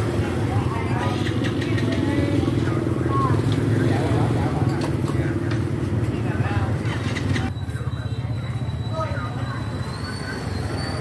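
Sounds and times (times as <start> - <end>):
people chattering: 0.0 - 11.0.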